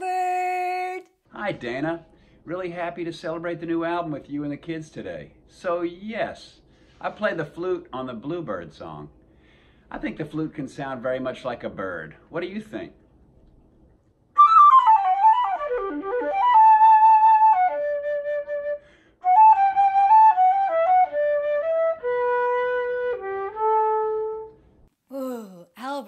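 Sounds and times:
flute playing melody: 14.4 - 24.6
flute player breath: 18.8 - 19.2.

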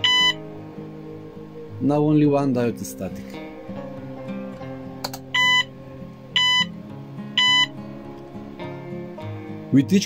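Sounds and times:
piezo buzzer short beeps: 0.0 - 0.4, 5.4 - 5.7, 6.4 - 6.7, 7.4 - 7.8
acoustic guitar music: 0.0 - 10.0.

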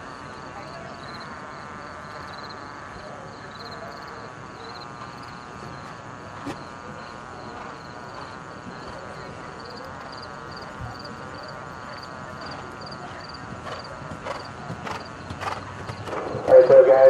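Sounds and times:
murmur of distant voices: 0.0 - 17.0.

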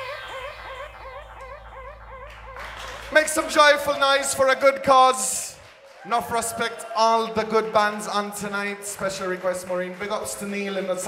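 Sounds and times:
low bass hum: 0.0 - 4.6
swooping electronic tone: 0.0 - 5.2.

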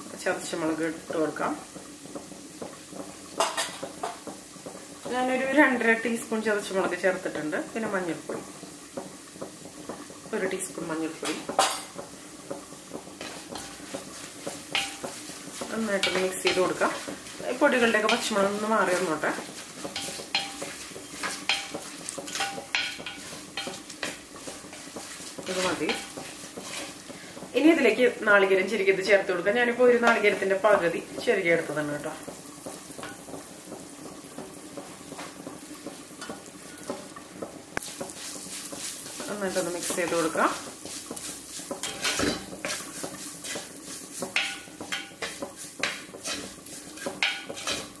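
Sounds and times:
oil sizzling: 0.0 - 48.0
wooden spoon scraping clay pot: 13.2 - 27.2, 37.8 - 48.0
steel spoon clinking on clay pot: 14.7 - 15.0, 20.0 - 24.2, 44.4 - 46.4.

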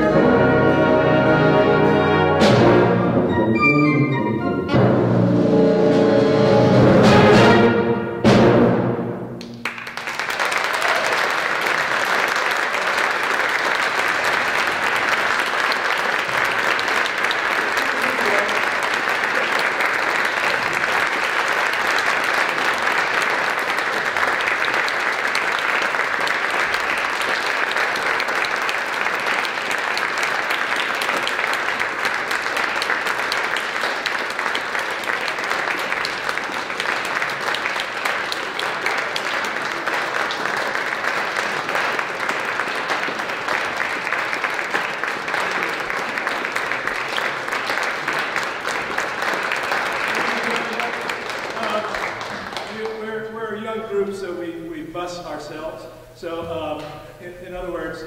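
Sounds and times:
audience applauding: 9.4 - 53.4.

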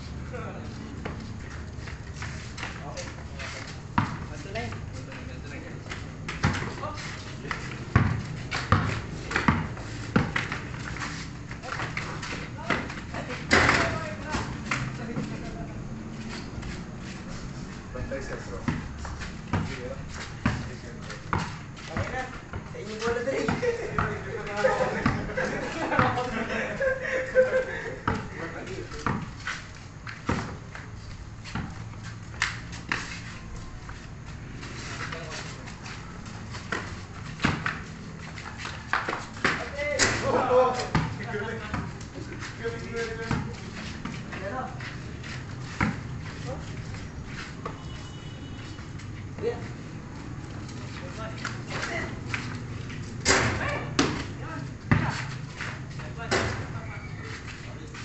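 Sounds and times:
basketball bouncing on concrete: 3.9 - 5.2, 5.8 - 6.8, 7.5 - 10.9, 11.6 - 15.4, 18.6 - 26.3, 28.0 - 28.3, 28.9 - 29.4, 30.0 - 30.9, 31.5 - 33.0, 36.6 - 40.2, 40.8 - 42.0, 42.7 - 44.5, 53.3 - 56.7.

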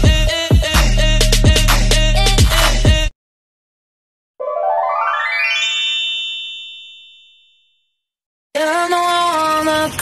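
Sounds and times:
electronic chime: 4.4 - 8.0.

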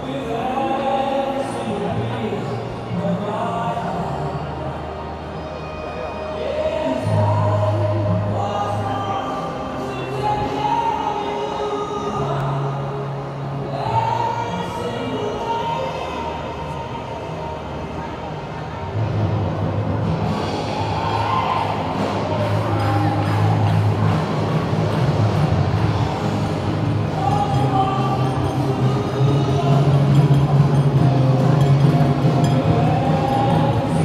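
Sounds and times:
crowd voices: 0.0 - 34.0
festival music from loudspeakers: 0.0 - 34.0.

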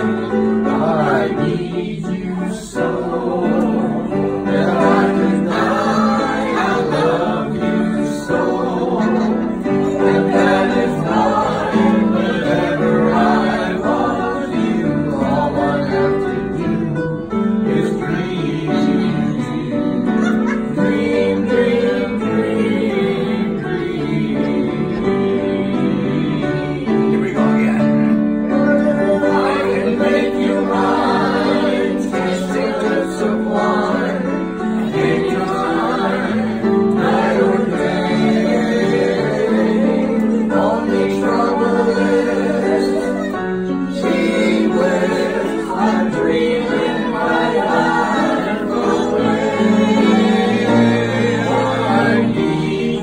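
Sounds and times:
man and woman singing: 0.0 - 53.0.

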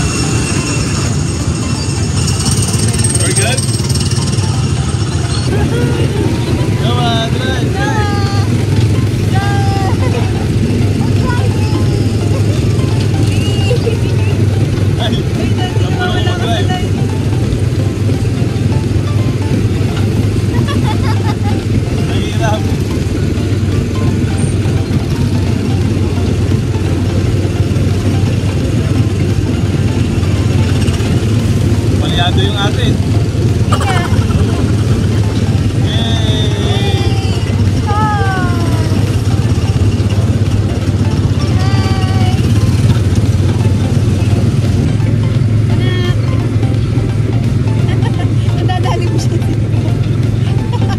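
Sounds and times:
small gasoline engine droning: 0.0 - 50.9
voices: 0.0 - 50.9.

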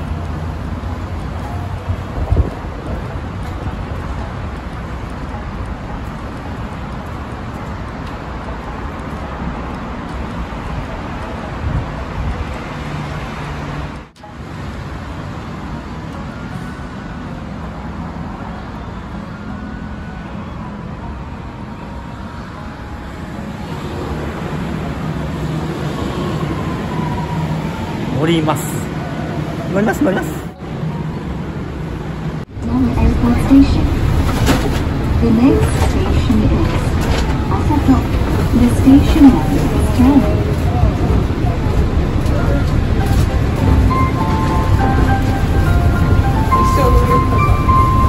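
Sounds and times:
monorail train arriving with whine: 0.0 - 48.0
road traffic noise: 0.0 - 48.0.

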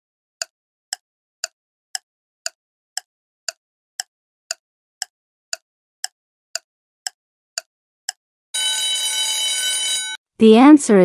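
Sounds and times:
timer tick: 0.4 - 8.2
electronic alarm tone: 8.6 - 10.2.

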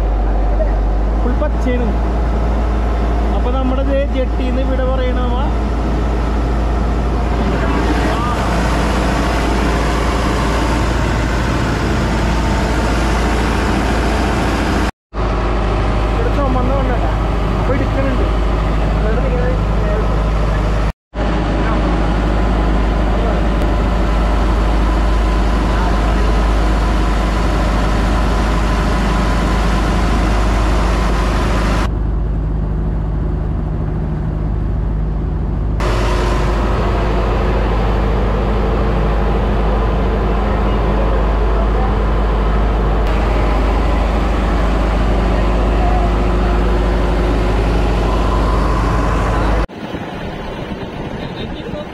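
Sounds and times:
wind rumble: 0.0 - 25.7, 26.4 - 51.9
water rushing against hull: 0.0 - 31.9, 35.8 - 51.9
motorboat engine running: 0.0 - 51.9.

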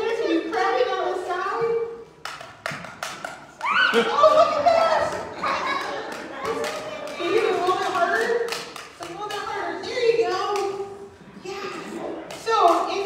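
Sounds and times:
children and adult talking: 0.0 - 2.4, 3.0 - 13.0.

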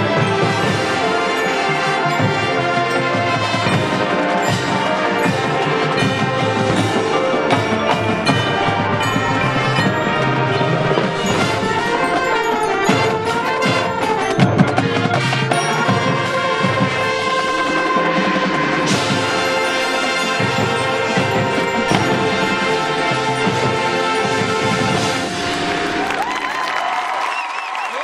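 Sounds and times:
timpani: 0.0 - 26.6
marching band brass: 0.0 - 28.0
marimbas: 0.1 - 26.1.

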